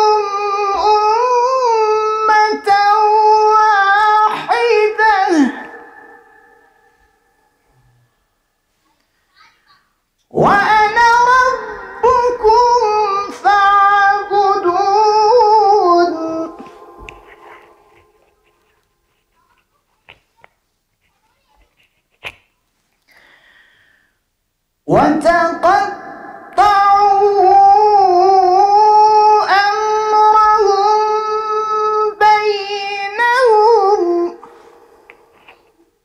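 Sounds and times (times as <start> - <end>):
man chanting a recitation: 0.0 - 6.6, 10.3 - 18.4, 24.9 - 34.7
echo of voice: 0.0 - 8.6, 9.4 - 18.8, 24.8 - 36.0.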